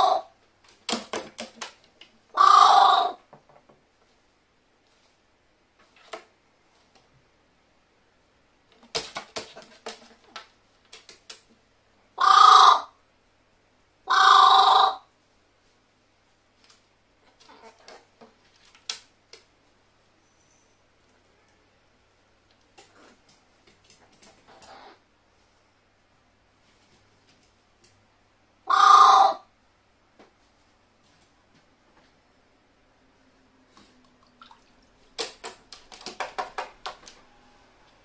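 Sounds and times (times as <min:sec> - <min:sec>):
crow cawing: 0:02.4 - 0:03.2, 0:12.2 - 0:12.9, 0:14.1 - 0:15.0, 0:28.7 - 0:29.4.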